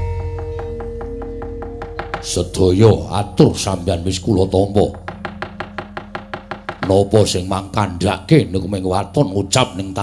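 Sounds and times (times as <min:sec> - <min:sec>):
wooden knocker on metal plates: 0:00.2 - 0:02.7, 0:04.2 - 0:07.4.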